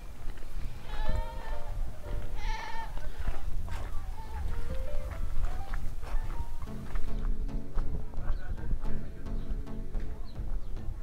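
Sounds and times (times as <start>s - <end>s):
background music: 0.7s - 11.0s
goat bleating: 0.8s - 3.2s.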